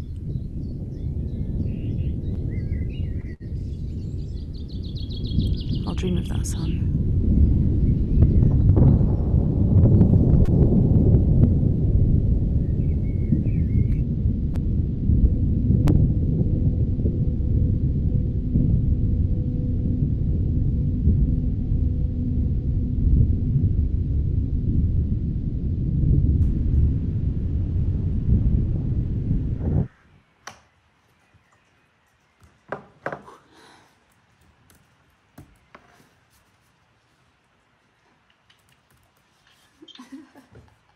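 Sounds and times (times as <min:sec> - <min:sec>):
muffled microphone rumbling: 0:00.0 - 0:30.4.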